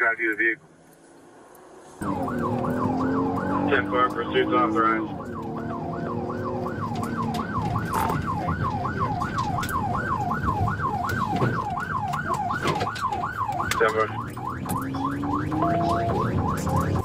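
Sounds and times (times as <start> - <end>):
car engine and road noise: 0.0 - 17.0
police siren yelping: 2.0 - 17.0.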